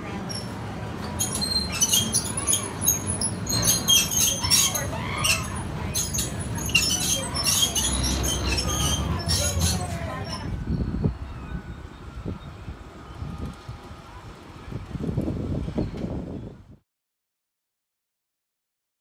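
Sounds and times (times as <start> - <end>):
train cars rumbling: 0.0 - 16.8
wheel squeaks and clicks: 0.2 - 11.0, 15.6 - 16.2.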